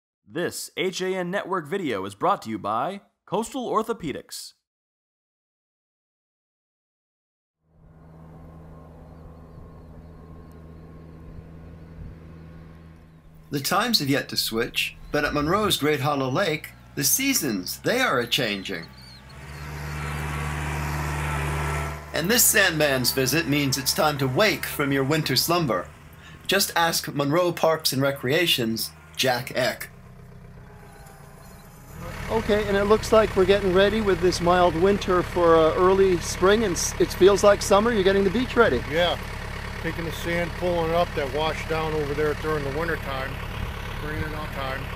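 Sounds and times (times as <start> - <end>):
engine running steadily: 7.8 - 44.9
faint high chirps: 30.6 - 32.0.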